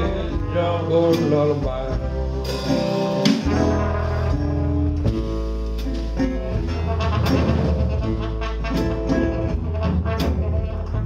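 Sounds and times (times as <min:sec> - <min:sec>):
blues guitar: 0:00.0 - 0:11.0
double bass line: 0:00.0 - 0:11.0.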